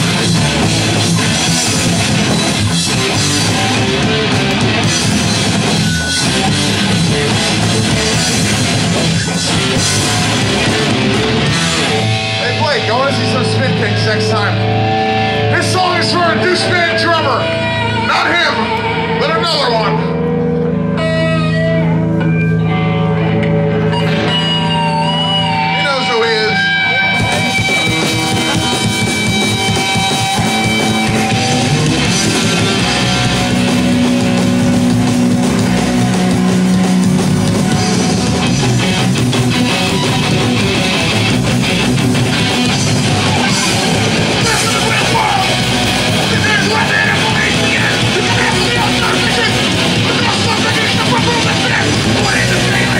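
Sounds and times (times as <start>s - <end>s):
electric guitar bending notes: 0.0s - 52.9s
punk band playing: 0.0s - 52.9s.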